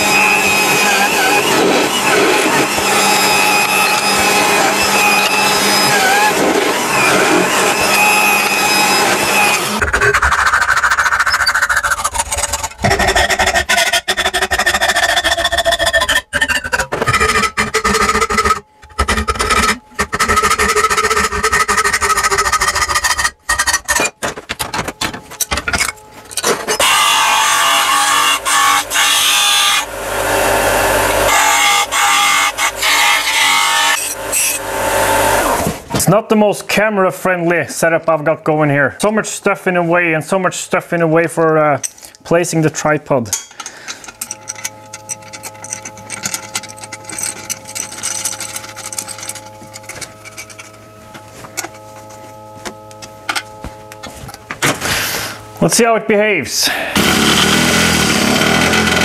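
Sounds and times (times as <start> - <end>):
drill press boring through metal: 0.0 - 24.2, 25.4 - 35.9, 43.5 - 55.8, 56.6 - 59.0
hacksaw cutting metal: 0.0 - 35.8, 43.3 - 55.7, 56.7 - 59.0
disc sander: 0.0 - 36.0, 43.6 - 59.0.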